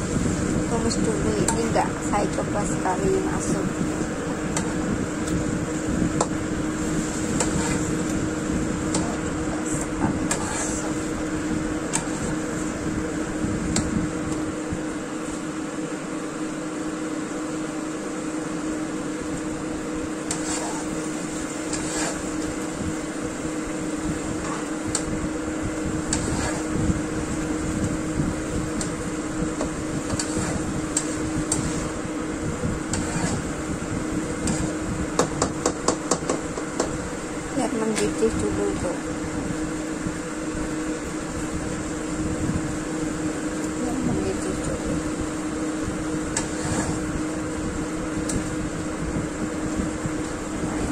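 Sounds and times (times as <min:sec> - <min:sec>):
kitchen appliance hum and hiss: 0:00.0 - 0:50.9
spatula stirring vegetables in wok: 0:06.2 - 0:09.4, 0:10.2 - 0:12.7, 0:20.2 - 0:25.1, 0:26.0 - 0:33.7, 0:46.2 - 0:47.1.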